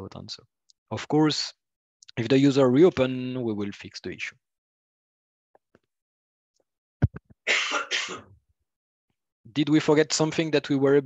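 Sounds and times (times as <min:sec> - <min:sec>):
microphone clicks: 0:07.0 - 0:07.4
person clearing throat: 0:07.5 - 0:08.3.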